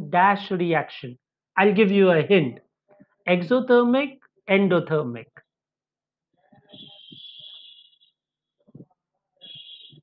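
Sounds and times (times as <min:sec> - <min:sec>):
high-pitched whistle: 0:06.7 - 0:08.0, 0:09.4 - 0:10.0.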